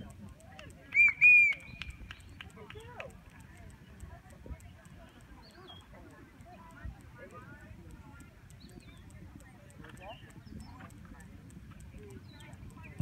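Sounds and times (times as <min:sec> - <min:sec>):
quiet voices: 0:00.0 - 0:13.0.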